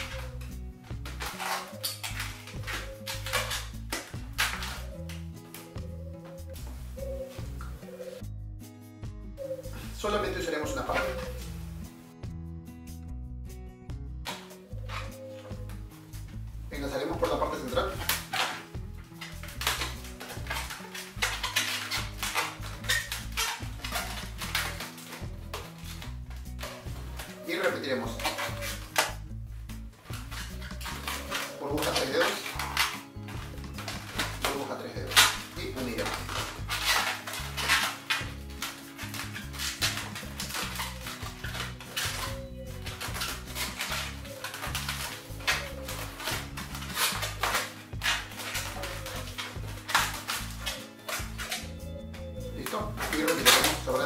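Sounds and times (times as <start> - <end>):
balloons rubbing scrapes: 0.0 - 8.2, 14.7 - 16.3, 17.1 - 54.0
balloons squeaking: 0.0 - 8.3, 9.4 - 11.9, 14.3 - 54.0
background music: 0.0 - 54.0.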